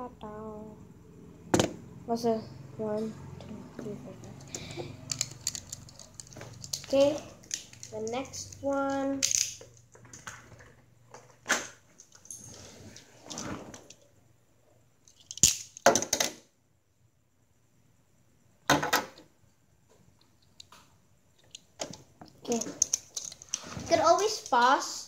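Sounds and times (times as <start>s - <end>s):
plastic tops clicking and rustling: 4.3s - 12.4s, 15.1s - 16.4s, 21.4s - 23.6s.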